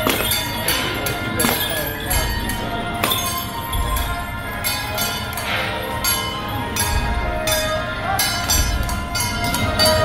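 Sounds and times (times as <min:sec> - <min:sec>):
metal cymbals clashing: 0:00.0 - 0:10.0
ringing gongs: 0:00.0 - 0:10.0
low drum beats: 0:06.8 - 0:07.6.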